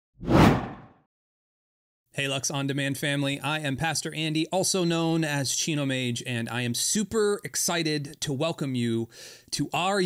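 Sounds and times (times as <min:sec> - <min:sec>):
whoosh: 0:00.2 - 0:00.9.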